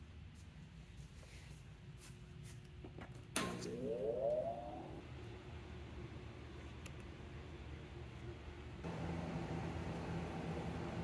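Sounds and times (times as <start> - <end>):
electrical cabinet whine and hum: 0.0 - 11.0.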